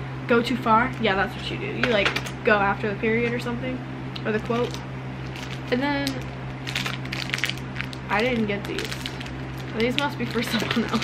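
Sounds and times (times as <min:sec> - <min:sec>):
plastic package crinkling: 0:04.6 - 0:11.0.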